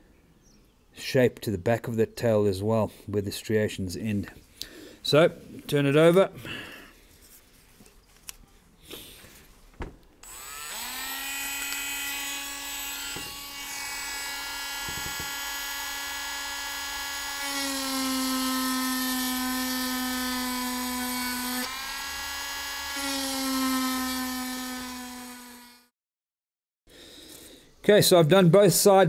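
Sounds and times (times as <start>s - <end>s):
rotary tool whining: 10.2s - 25.9s.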